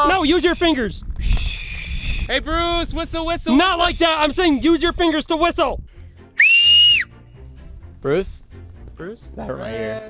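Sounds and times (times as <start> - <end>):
loud two-finger whistle: 1.2 - 2.3, 6.4 - 7.1.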